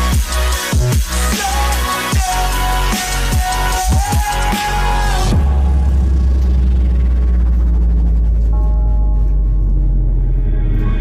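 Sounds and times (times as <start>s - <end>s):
electronic music deep bass drone: 0.0s - 11.0s.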